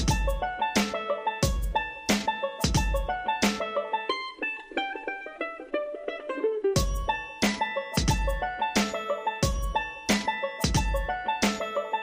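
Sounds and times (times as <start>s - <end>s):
upbeat background music: 0.0s - 4.1s, 6.7s - 12.0s
plucked-string melody: 0.0s - 12.0s.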